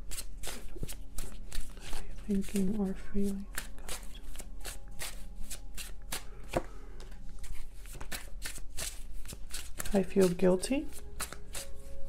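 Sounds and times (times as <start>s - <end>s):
cards being shuffled by hand: 0.0s - 11.9s.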